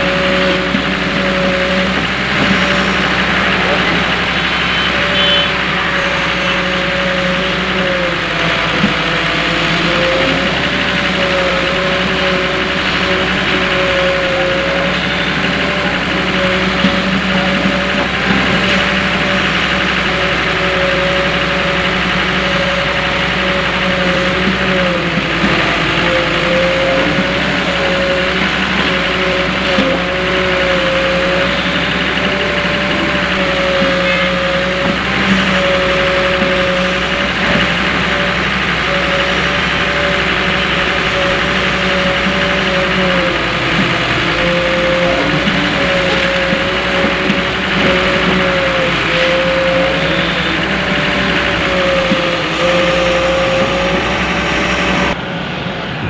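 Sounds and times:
excavator diesel engine running: 0:00.0 - 0:56.0
wavering whine: 0:00.0 - 0:56.0.

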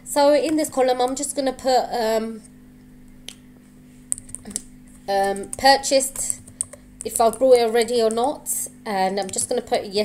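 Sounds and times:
computer keyboard keystrokes: 0:04.1 - 0:08.4, 0:09.2 - 0:09.7.

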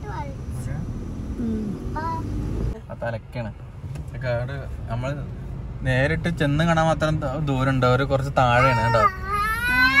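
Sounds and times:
vehicle rumble: 0:00.0 - 0:10.0.

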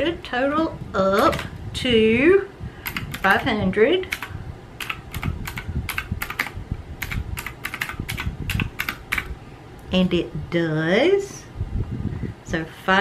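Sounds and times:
calculator keys clicking: 0:02.8 - 0:03.3, 0:04.1 - 0:09.3.

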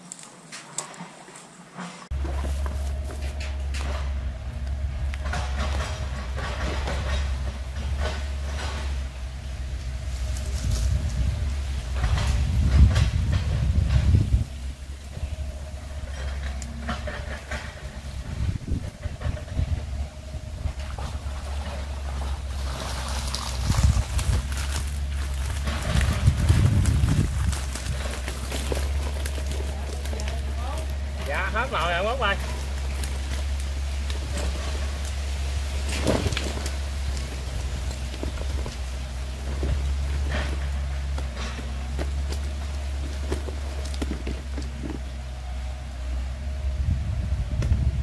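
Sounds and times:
low rumble: 0:02.1 - 0:48.0
rustling and knocking of net and bags: 0:20.9 - 0:45.1.

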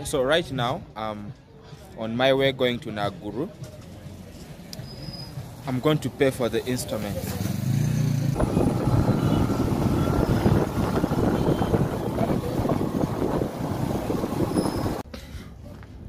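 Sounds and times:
traffic: 0:03.4 - 0:16.0
motorcycle engine running: 0:07.2 - 0:15.0.

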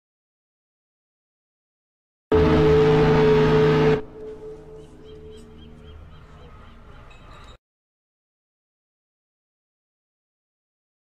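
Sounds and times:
ship's horn blast: 0:02.3 - 0:06.7.

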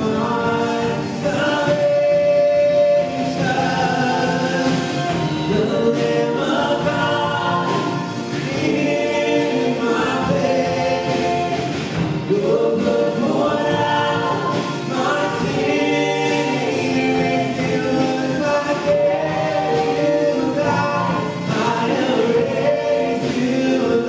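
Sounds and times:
band with guitars piano and drums: 0:00.0 - 0:24.0
many voices singing along: 0:00.0 - 0:24.0
woman singing lead: 0:00.0 - 0:24.0.

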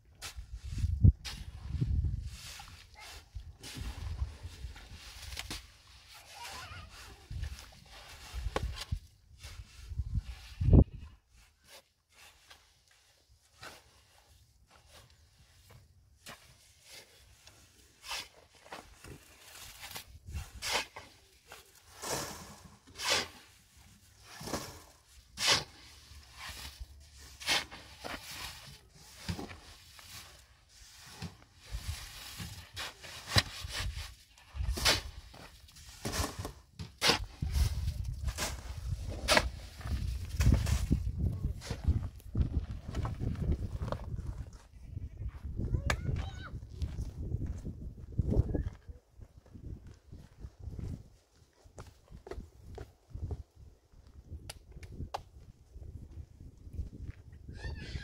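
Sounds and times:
shovels scraping wet concrete: 0:02.2 - 0:10.0, 0:16.2 - 0:41.0.

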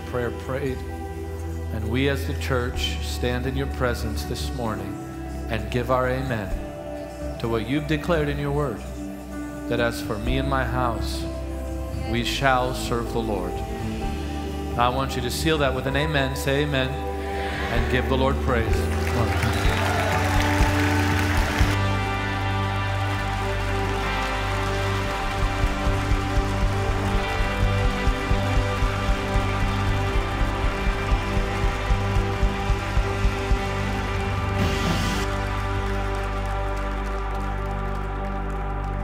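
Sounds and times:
low bass: 0:00.0 - 0:39.0
worship band playing slow music: 0:00.0 - 0:39.0
regular low beat: 0:25.1 - 0:35.2.

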